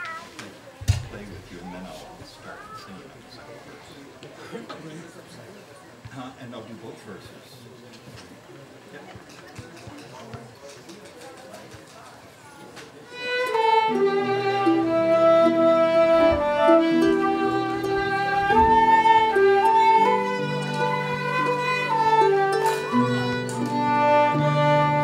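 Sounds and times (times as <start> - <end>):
low background murmur: 0.0 - 25.0
fiddle flute and harp tune: 13.1 - 25.0.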